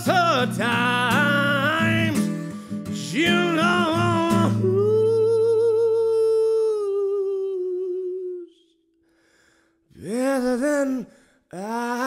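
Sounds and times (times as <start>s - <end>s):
acoustic guitar note: 0.0s - 5.5s
man singing long note with vibrato: 3.0s - 8.6s.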